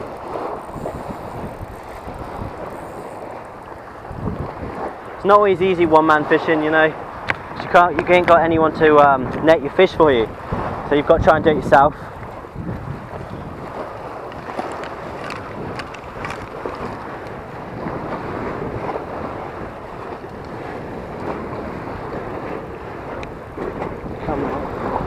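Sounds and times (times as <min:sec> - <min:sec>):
water washing against seawall: 0:00.0 - 0:25.0
wind buffeting microphone: 0:00.0 - 0:25.0.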